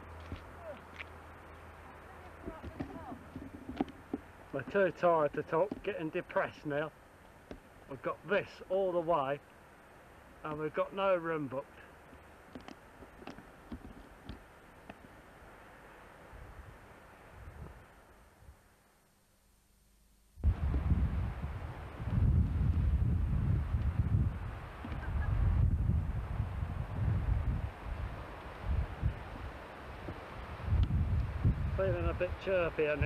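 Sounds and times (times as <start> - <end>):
wind buffeting microphone: 20.4 - 33.0.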